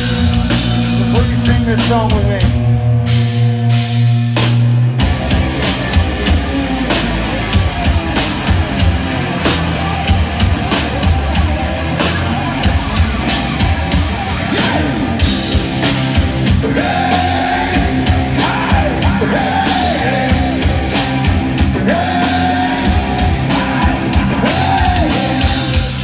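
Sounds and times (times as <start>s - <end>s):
held guitar and bass chord: 0.0s - 25.8s
drums: 0.0s - 26.0s
hard rock band playing: 0.0s - 26.0s.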